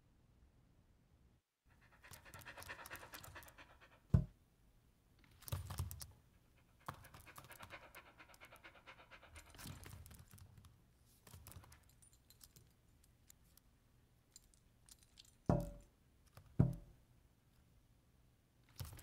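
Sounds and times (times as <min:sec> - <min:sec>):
dog panting: 0:01.7 - 0:04.3, 0:06.3 - 0:10.3.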